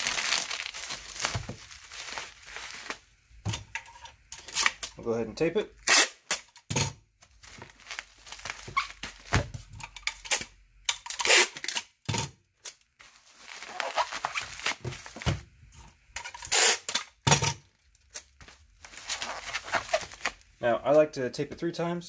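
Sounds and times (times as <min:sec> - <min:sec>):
packing tape pulled and torn: 0:00.0 - 0:03.0, 0:04.4 - 0:05.0, 0:05.8 - 0:09.4, 0:10.0 - 0:15.2, 0:16.2 - 0:20.4
bubble wrap crinkling: 0:00.0 - 0:03.7, 0:07.2 - 0:12.0, 0:12.6 - 0:15.4, 0:16.3 - 0:20.6.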